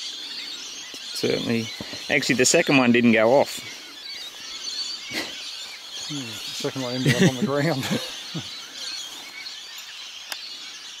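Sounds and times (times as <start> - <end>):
distant bird chirps: 0.0 - 11.0.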